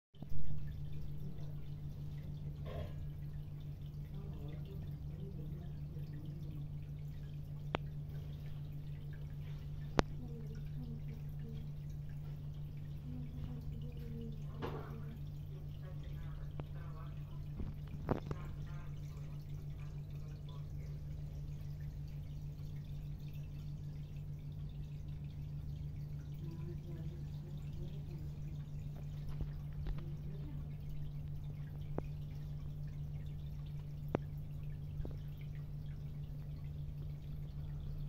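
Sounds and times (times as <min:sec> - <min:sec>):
aquarium equipment humming: 0:00.2 - 0:38.0
water trickling and dripping: 0:00.2 - 0:38.0.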